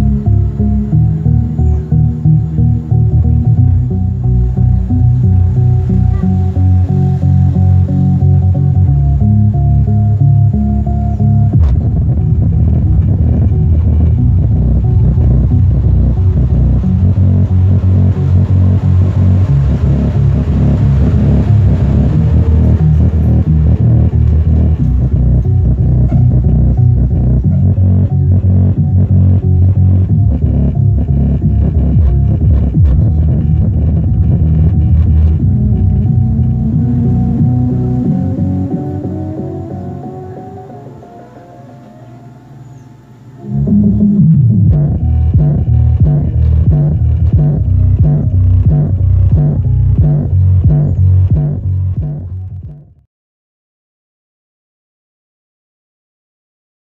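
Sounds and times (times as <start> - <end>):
bass-heavy music through subwoofer: 0.0 - 41.2, 43.4 - 53.0.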